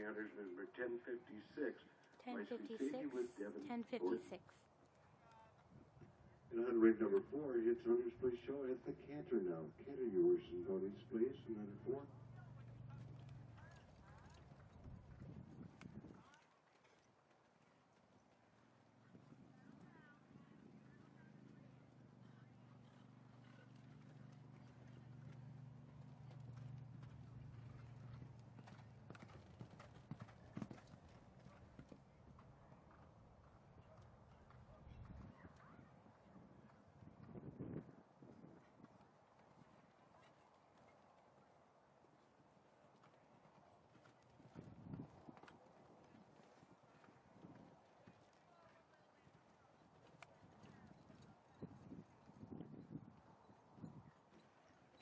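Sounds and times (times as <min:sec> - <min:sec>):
pony hoofbeats cantering: 0:00.0 - 0:07.4, 0:09.9 - 0:55.0
faint low hum: 0:00.0 - 0:17.0, 0:17.6 - 0:55.0.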